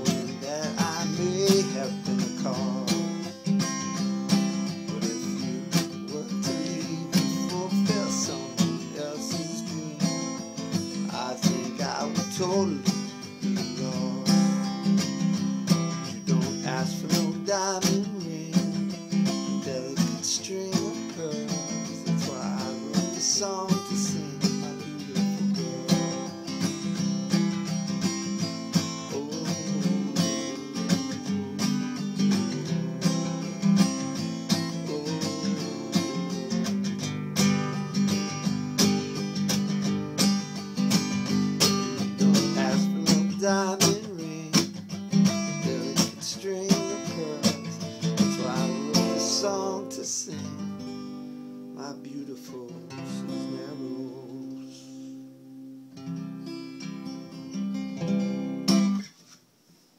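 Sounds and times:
acoustic guitar strumming: 0.0 - 59.3.

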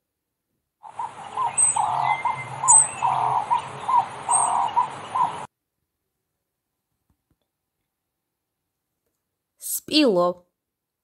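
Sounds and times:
high bird chirps: 0.8 - 5.5.

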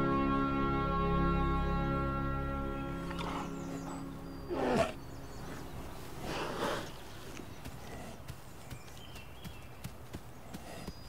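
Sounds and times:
bear yawning groan: 2.9 - 8.2
breathy exhalation: 2.9 - 8.3.

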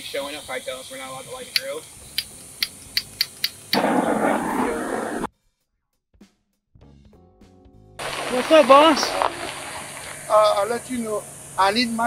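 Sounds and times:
torch igniter clicks: 1.5 - 4.4
torch flame rushing hiss: 3.6 - 5.3, 8.0 - 12.0.

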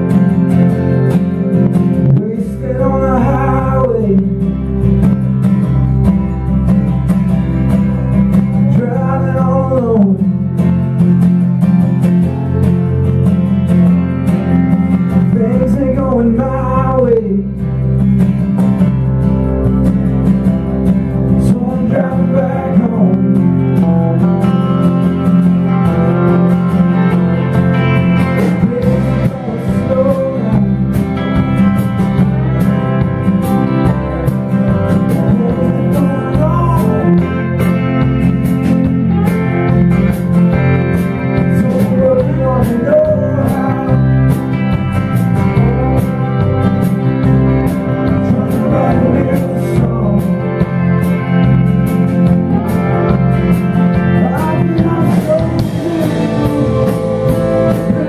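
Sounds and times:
country band playing: 0.0 - 58.0.

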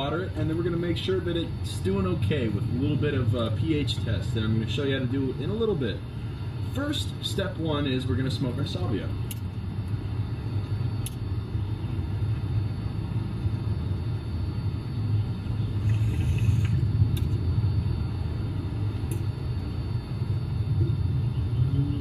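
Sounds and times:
steady low rumble: 0.0 - 22.0.

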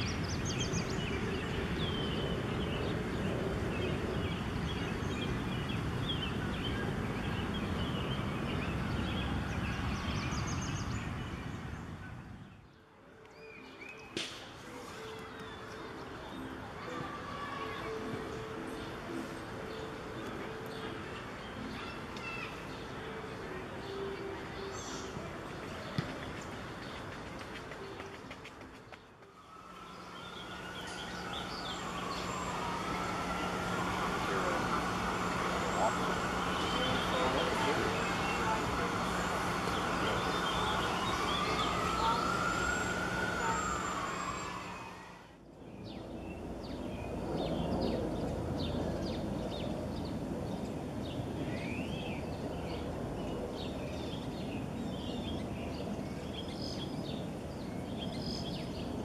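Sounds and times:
low city hum: 0.0 - 59.0
small birds chirping: 0.0 - 59.0
distant siren wailing: 29.2 - 45.4.

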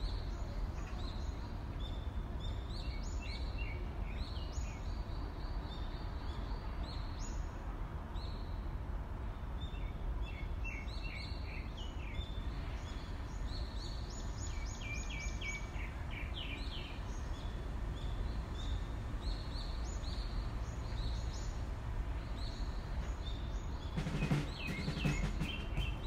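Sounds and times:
small birds chirping: 9.7 - 26.0.

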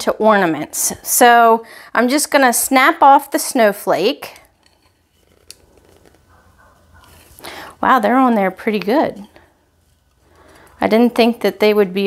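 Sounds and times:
faint handling of candle holder: 4.4 - 7.5, 8.9 - 11.2.

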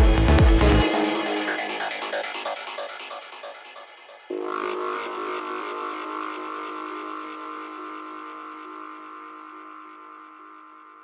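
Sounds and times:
held synthesizer chord: 0.0 - 11.0.

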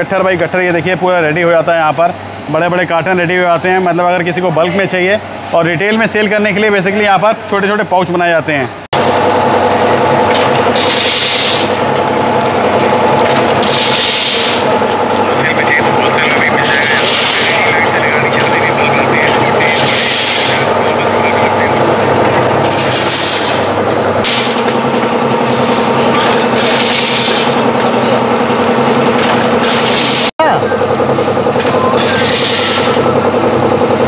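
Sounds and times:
packing machine clatter: 10.1 - 21.4, 22.2 - 28.0, 29.1 - 33.4.

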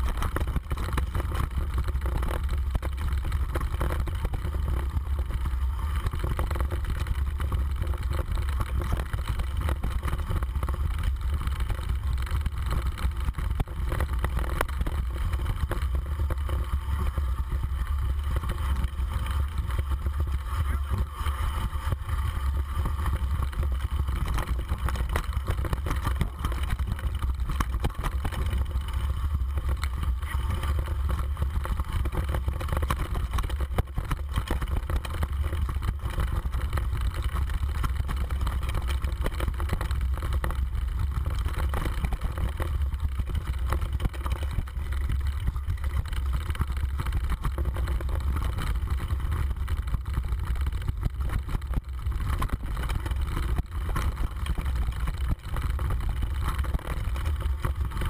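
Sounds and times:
bike rattling over rocky trail: 0.0 - 58.0.

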